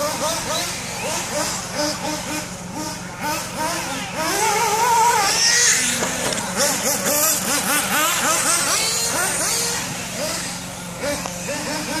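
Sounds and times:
rc car motor revving: 0:00.0 - 0:12.0.

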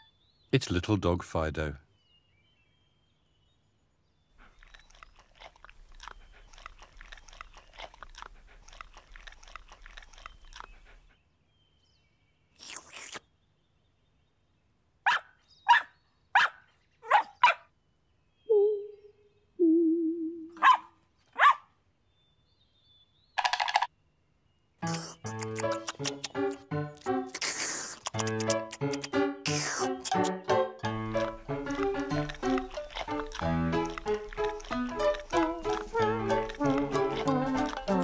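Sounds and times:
dog crunching ice cream: 0:04.4 - 0:11.1, 0:24.8 - 0:38.0
short sharp dog sounds: 0:20.6 - 0:21.7
dog whining: 0:30.9 - 0:38.0.

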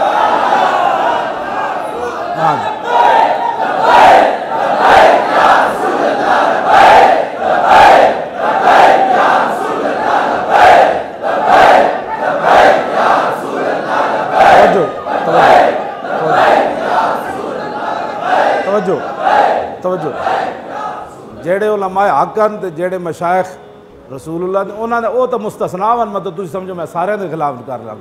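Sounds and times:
crowd of men chanting: 0:00.0 - 0:21.3.

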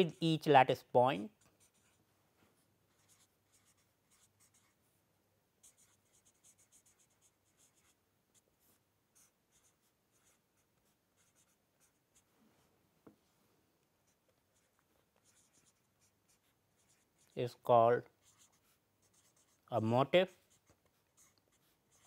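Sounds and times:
marker scratching on paper: 0:01.2 - 0:02.0, 0:02.9 - 0:04.8, 0:05.6 - 0:12.3, 0:14.0 - 0:22.0.

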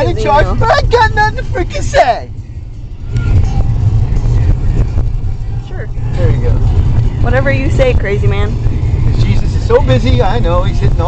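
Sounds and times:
car interior road and engine noise: 0:00.0 - 0:11.0.

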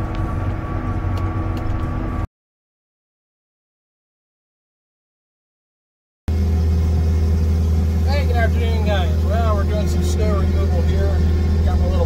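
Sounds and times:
diesel engine running: 0:00.0 - 0:02.3, 0:06.3 - 0:12.0.

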